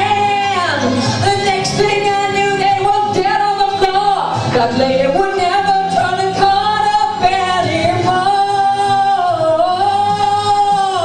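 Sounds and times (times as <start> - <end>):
backing music: 0.0 - 11.0
woman singing through a pa: 0.0 - 11.0.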